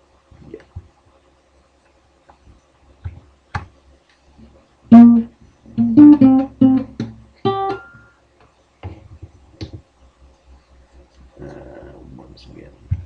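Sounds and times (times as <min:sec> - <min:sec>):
guitar riff: 0:04.9 - 0:08.1.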